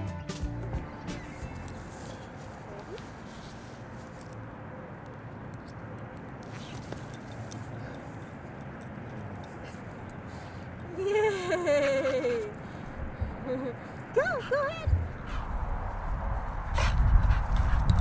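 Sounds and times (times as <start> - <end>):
background music: 0.0 - 1.9
outdoor background noise: 0.0 - 18.0.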